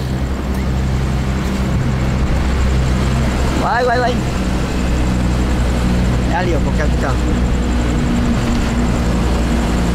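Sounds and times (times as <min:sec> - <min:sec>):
engine hum inside moving vehicle: 0:00.0 - 0:09.9.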